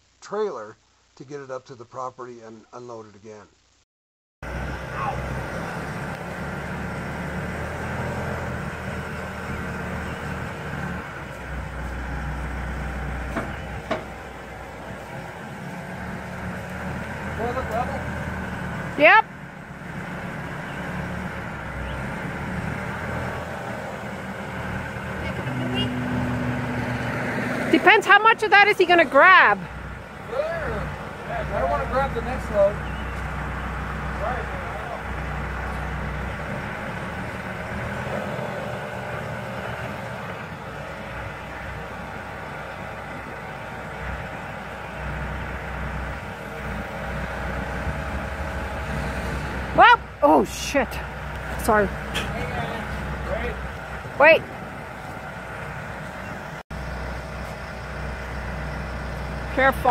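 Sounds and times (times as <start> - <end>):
diesel engine running: 4.4 - 59.9.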